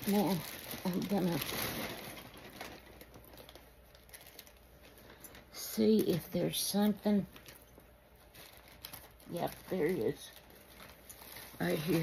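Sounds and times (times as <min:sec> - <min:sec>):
packaging rustling and clicking: 0:00.0 - 0:06.3, 0:07.3 - 0:12.0.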